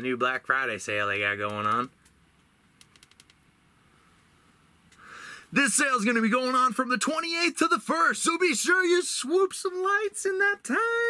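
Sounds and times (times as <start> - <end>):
faint clicks: 1.4 - 3.4.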